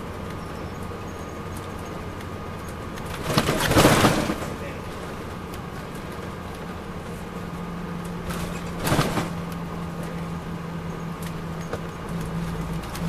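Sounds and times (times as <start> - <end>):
diesel engine low hum: 0.0 - 13.0
road noise: 0.0 - 13.0
loud clatter: 3.0 - 4.8, 8.2 - 9.6.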